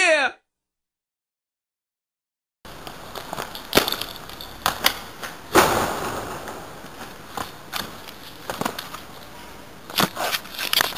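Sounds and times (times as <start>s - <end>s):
outdoor background hiss: 2.7s - 10.9s.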